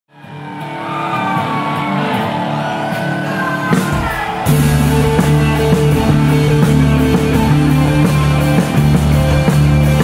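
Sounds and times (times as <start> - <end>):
rock music with droning tones: 3.7 - 10.0.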